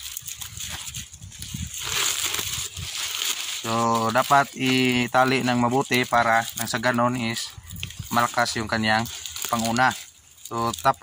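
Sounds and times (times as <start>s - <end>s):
cabbage leaves rustling: 0.0s - 11.0s
plastic strapping crinkling: 0.0s - 11.0s.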